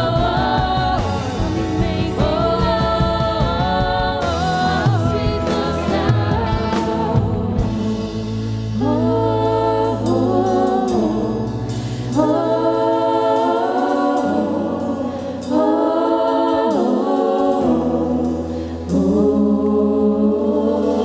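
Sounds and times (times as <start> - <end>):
choir singing held chords: 0.0 - 21.0
low accompaniment: 0.0 - 21.0.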